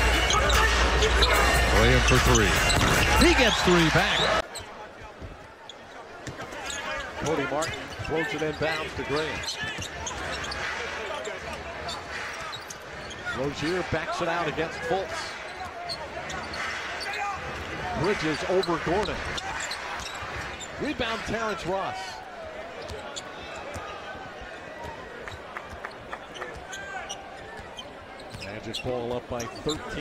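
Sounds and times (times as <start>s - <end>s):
sneaker squeaks: 0.0s - 4.7s, 5.7s - 13.8s, 18.2s - 20.9s, 22.7s - 24.0s, 24.8s - 30.0s
arena crowd noise: 0.0s - 30.0s.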